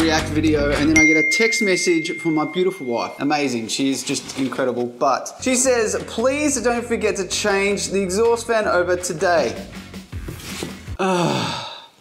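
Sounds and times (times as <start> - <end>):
man sighing: 11.0 - 12.0.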